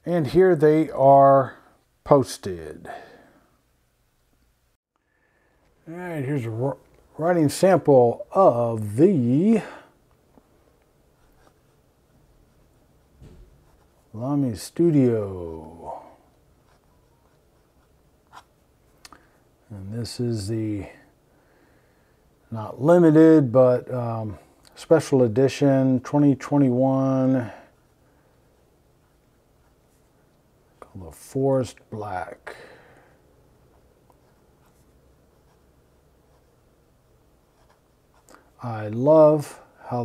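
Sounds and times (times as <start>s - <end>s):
fountain pen scratching paper: 34.2s - 35.7s, 37.4s - 38.3s.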